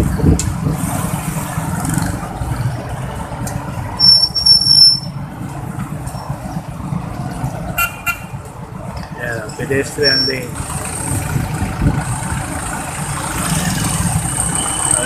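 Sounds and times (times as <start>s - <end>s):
street traffic rumble: 0.0s - 15.0s
short horn beep: 4.0s - 5.2s, 10.0s - 10.4s
shrill high-pitched toot: 4.0s - 5.2s, 10.0s - 10.5s.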